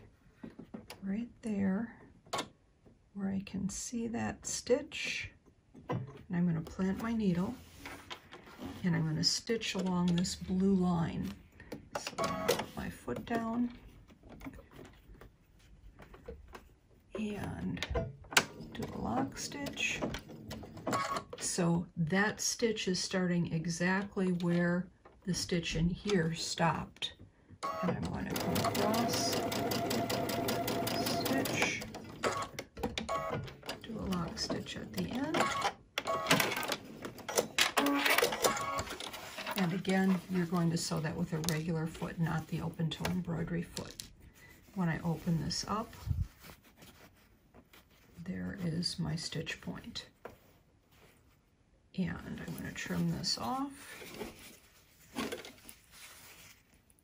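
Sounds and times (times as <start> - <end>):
sewing machine stitching: 27.6 - 39.7
sewing machine clicking and clatter: 27.7 - 39.7
cloth rustling: 44.2 - 48.6, 50.2 - 51.5, 52.4 - 57.0.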